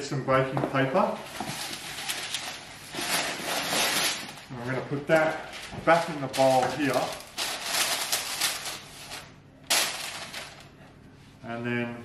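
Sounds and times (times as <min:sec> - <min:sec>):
baking paper crinkling: 0:01.0 - 0:10.8.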